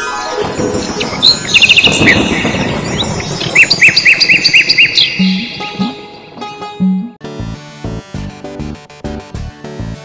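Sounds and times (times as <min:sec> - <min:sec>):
bird chirping short notes: 0:03.9 - 0:06.1.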